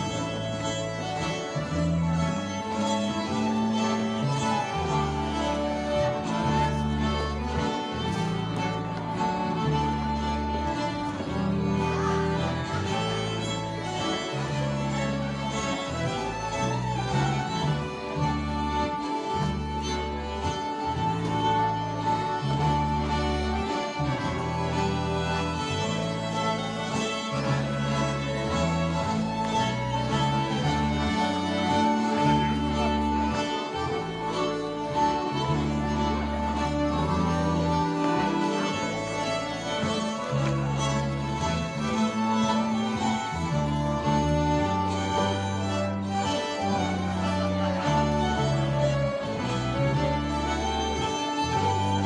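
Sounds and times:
dance band on fiddles and accordion: 0.0 - 52.0.

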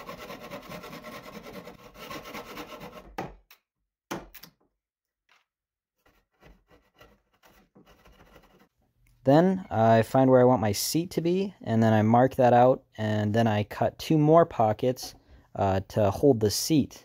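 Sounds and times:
handsaw cutting wood: 0.0 - 3.2
knock: 3.1 - 3.4.

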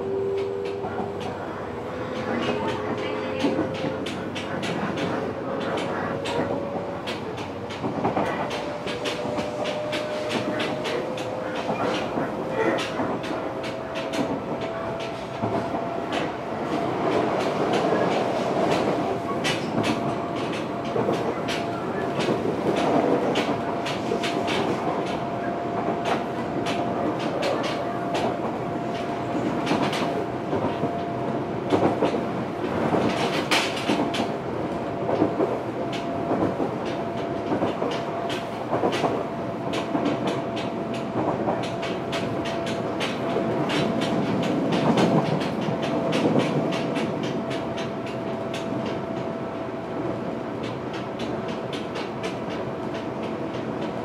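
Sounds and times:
steady train whine: 0.0 - 54.0
train running rumble: 0.0 - 54.0
wheels clicking over rail joints: 2.0 - 54.0.

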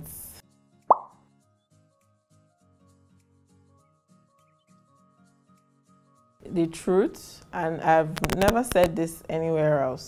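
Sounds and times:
soft background music: 0.0 - 10.0
upward-gliding plop effect: 0.9 - 1.2.

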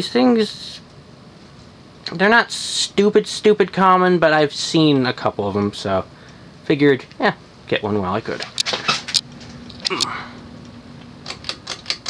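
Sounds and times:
ceiling fan humming: 0.0 - 12.0.

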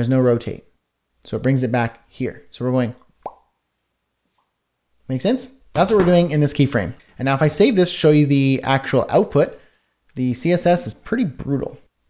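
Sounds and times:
mouth pop: 3.2 - 3.6.

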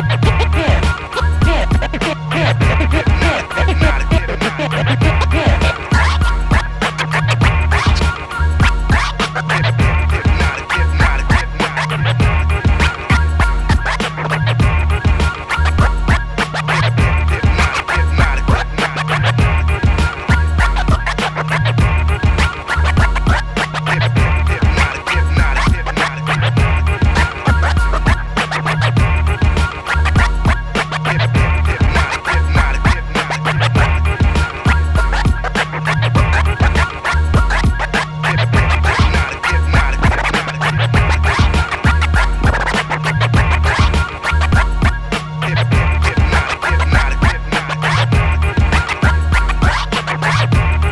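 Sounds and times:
drum beat with heavy bass: 0.0 - 50.9
turntable scratching: 0.0 - 50.9.

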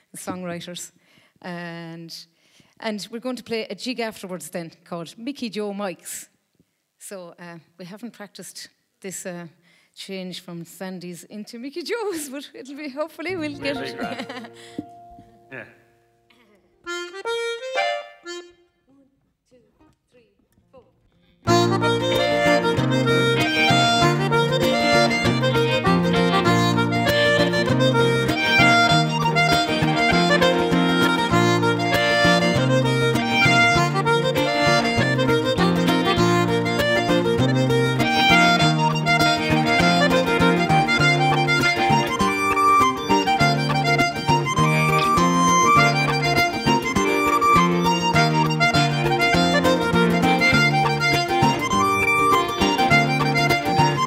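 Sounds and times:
acoustic guitar: 13.2 - 18.5, 21.4 - 54.0
button accordion playing a tune: 13.3 - 15.3, 16.8 - 18.8, 21.5 - 54.0
electric guitar: 21.5 - 54.0.

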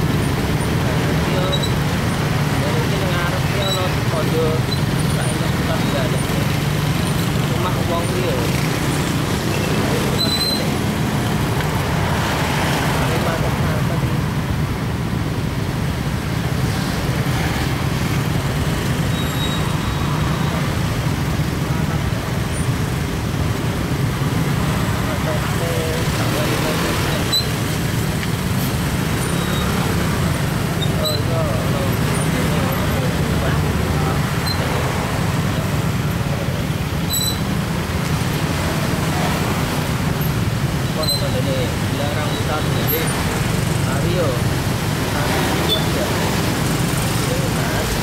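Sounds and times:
slow motorcycle and car traffic: 0.0 - 48.0.

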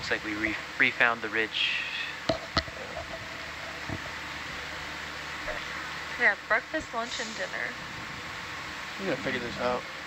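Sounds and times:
equipment hiss and hum: 0.0 - 10.0.

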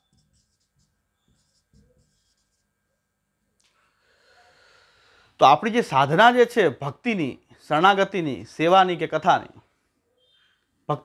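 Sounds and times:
marker scratching on whiteboard: 0.0 - 2.7.

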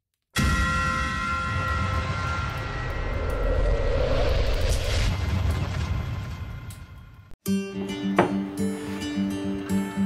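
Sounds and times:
whoosh: 1.7 - 7.3
deep rumble: 1.8 - 7.3.

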